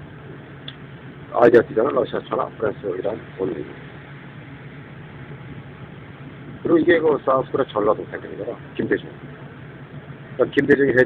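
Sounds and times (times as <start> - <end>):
bus engine hum: 0.0 - 11.0
bus interior rumble and hiss: 0.0 - 11.0.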